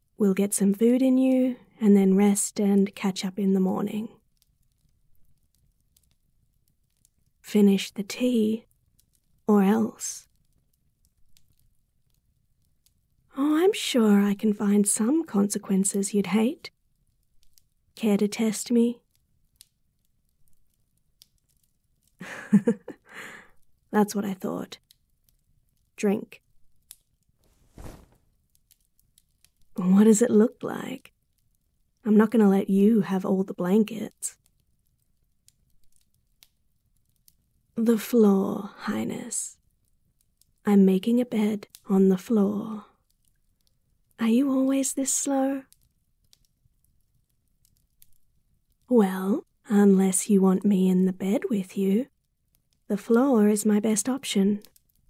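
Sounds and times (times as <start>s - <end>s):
faint soft clicks: 4.2s - 7.4s, 8.6s - 9.4s, 10.2s - 13.0s, 16.6s - 17.8s, 19.0s - 22.2s, 24.8s - 29.8s, 34.2s - 37.5s, 41.6s - 41.8s, 43.0s - 44.2s, 45.6s - 48.9s, 54.6s - 55.0s.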